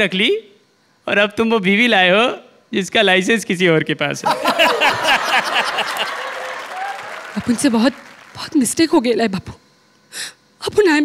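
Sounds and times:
audience laughing: 4.2s - 8.1s
studio audience applauding: 4.3s - 8.9s.

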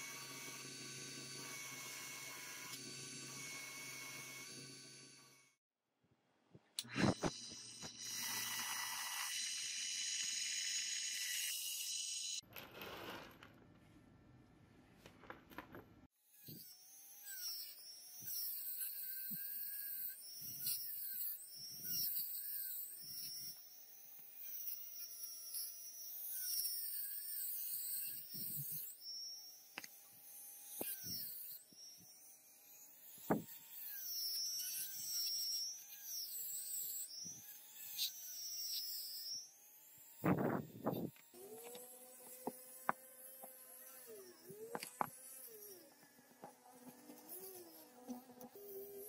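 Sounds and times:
rotary tool wire brush whine: 0.0s - 5.6s, 6.8s - 13.2s, 16.2s - 49.0s.

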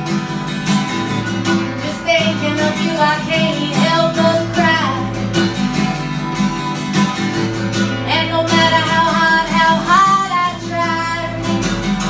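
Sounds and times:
acoustic guitar: 0.0s - 12.0s
woman singing: 1.7s - 5.4s, 8.0s - 12.0s.

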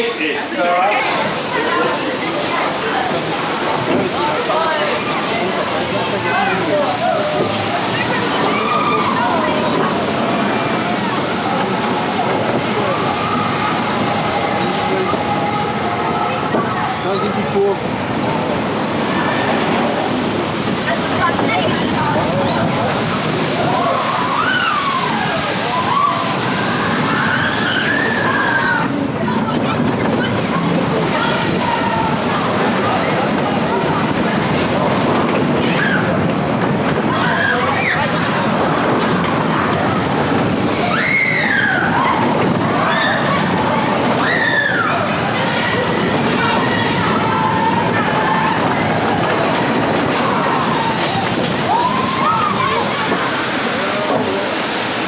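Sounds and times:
roller coaster rumbling on track: 0.0s - 55.0s.

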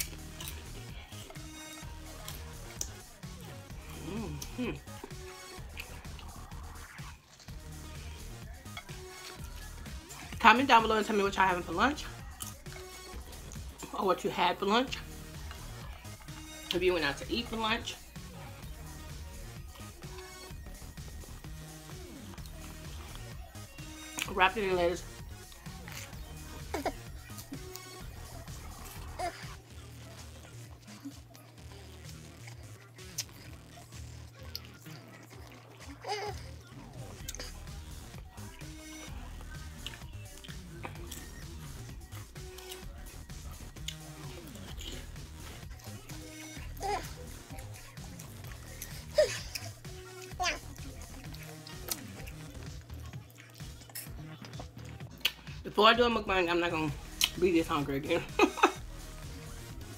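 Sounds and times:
crisp crunch of pickle bite: 0.0s - 0.7s
chewing mouth sounds: 0.0s - 10.4s, 12.1s - 13.9s, 25.0s - 55.6s, 57.0s - 57.4s
quiet background music: 0.0s - 59.9s
wet mouth clicks: 2.2s - 3.0s, 4.3s - 7.5s, 32.1s - 33.6s, 43.8s - 45.1s, 50.8s - 55.6s, 57.1s - 57.4s
woman humming mm sounds: 3.8s - 5.0s.

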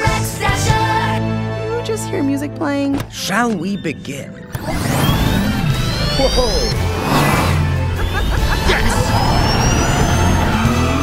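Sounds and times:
action music with bass line: 4.4s - 11.0s
electric motor whine: 4.6s - 11.0s.

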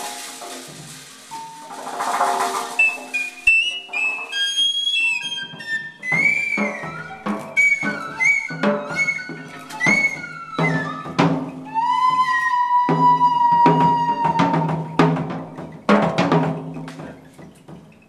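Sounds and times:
high wind instrument bending notes: 0.0s - 16.1s
jazz band playing: 0.0s - 18.0s.

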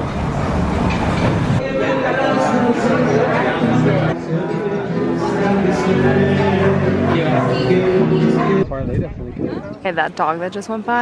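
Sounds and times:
background music: 1.6s - 8.6s
chatter: 1.6s - 11.0s
voices: 1.6s - 11.0s.

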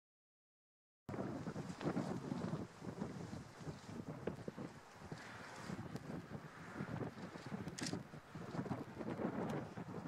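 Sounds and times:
wind buffeting microphone: 1.1s - 10.0s.

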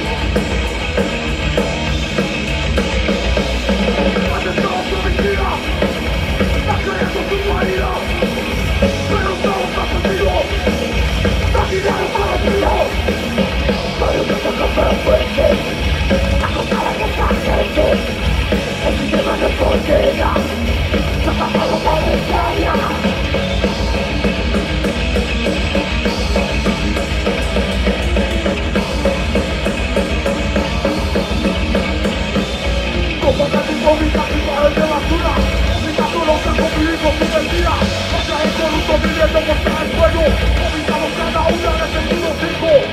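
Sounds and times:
distorted electric guitars: 0.0s - 42.9s
fast drumming on drum kit: 0.0s - 42.9s.

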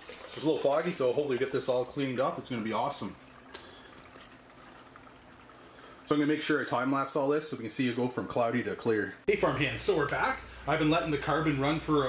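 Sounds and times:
water trickling into aquarium: 0.0s - 6.5s.

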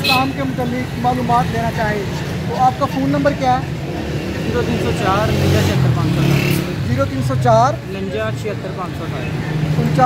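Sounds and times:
man speaking: 0.0s - 3.8s, 4.4s - 10.0s
vehicle engines humming: 0.0s - 10.0s.

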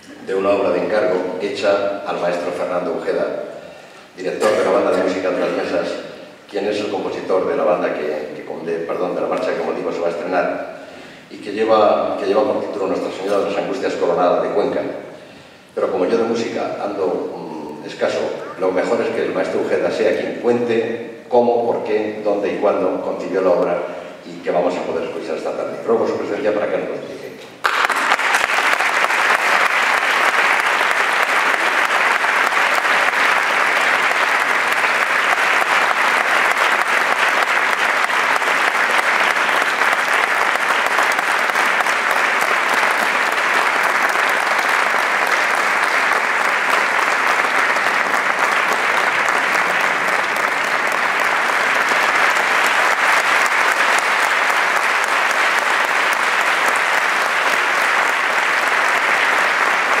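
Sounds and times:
audience applauding: 27.6s - 60.0s.

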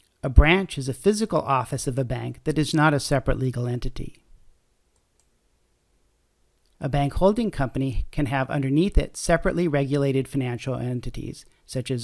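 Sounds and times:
man narrating: 0.2s - 4.2s, 6.8s - 12.0s.

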